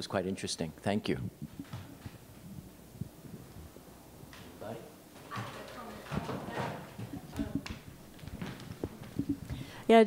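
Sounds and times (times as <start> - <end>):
murmured voices: 5.3 - 7.9
microphone handling knocks: 6.1 - 9.7.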